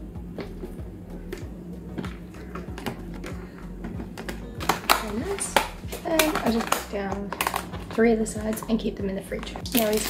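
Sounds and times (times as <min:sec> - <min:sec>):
background music with steady beat: 0:00.0 - 0:10.0
plastic containers clicking: 0:01.3 - 0:10.0.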